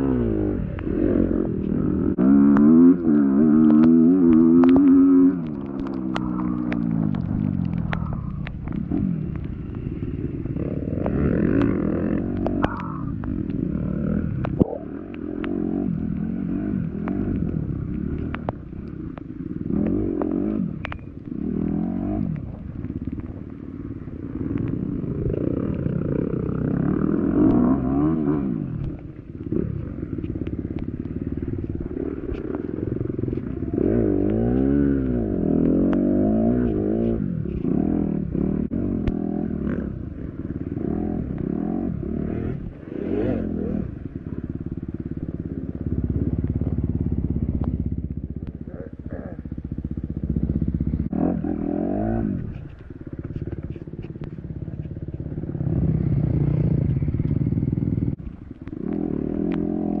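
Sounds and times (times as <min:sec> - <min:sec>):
dirt bike engine revving: 0:00.0 - 0:48.0, 0:48.6 - 0:53.6, 0:55.2 - 1:00.0.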